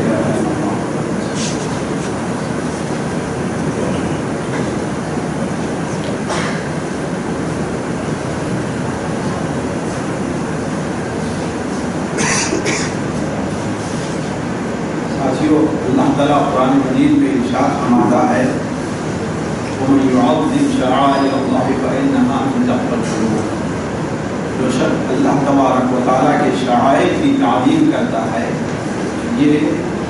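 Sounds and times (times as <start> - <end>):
loud steady rushing noise: 0.0 - 30.0.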